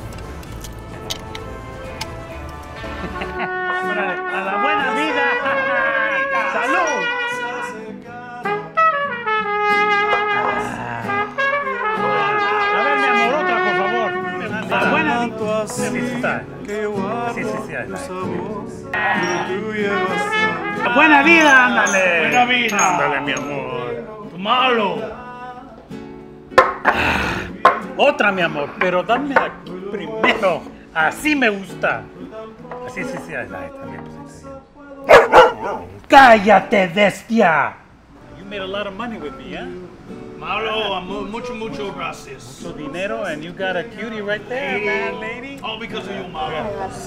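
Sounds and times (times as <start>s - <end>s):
acoustic guitar music: 0.0s - 37.2s, 37.8s - 47.0s
trumpet playing a melody: 0.8s - 15.3s, 19.0s - 23.5s.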